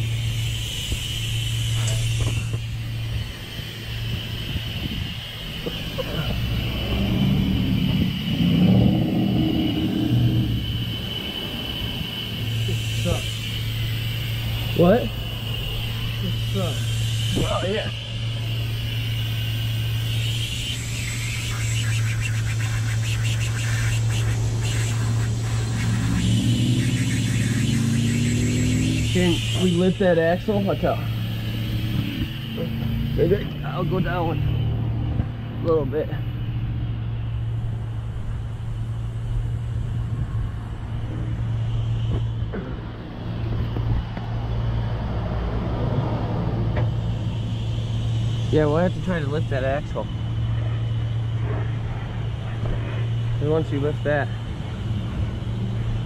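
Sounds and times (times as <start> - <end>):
low engine hum: 0.0 - 56.0
short rising squeaks: 5.6 - 12.8.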